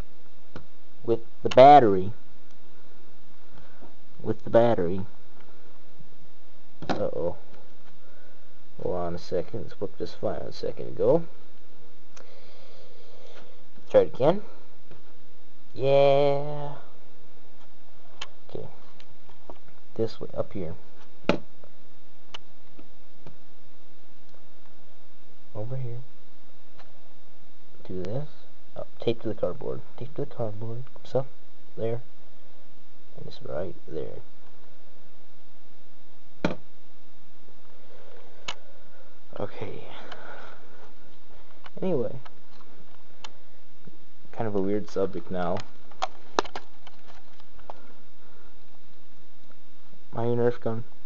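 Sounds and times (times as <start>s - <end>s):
steady background hiss: 0.0s - 51.0s
camera handling clicks and knocks: 45.6s - 47.5s.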